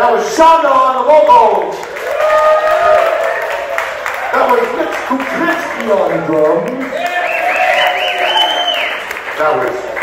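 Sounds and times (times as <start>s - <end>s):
audience applause: 1.8s - 10.0s.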